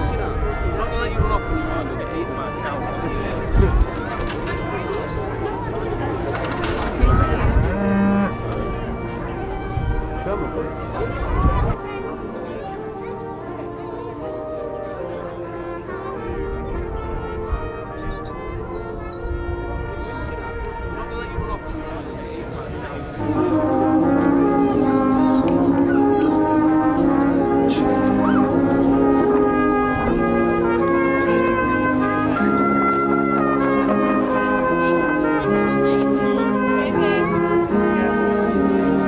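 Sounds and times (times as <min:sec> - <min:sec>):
brass band playing slow chords: 0:00.0 - 0:39.0
cow mooing: 0:07.6 - 0:08.5.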